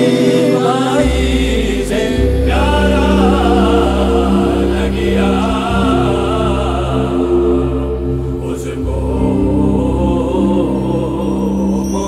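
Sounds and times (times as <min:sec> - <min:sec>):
sustained keyboard chords: 0:00.0 - 0:12.0
voices singing ornamented line: 0:00.0 - 0:12.0
deep bass note: 0:01.0 - 0:11.3.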